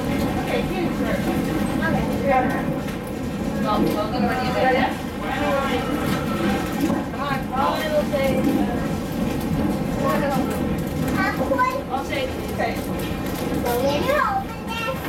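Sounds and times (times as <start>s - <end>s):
indistinct chatter of children: 0.0s - 15.0s
railway coach rumbling on track: 0.0s - 15.0s.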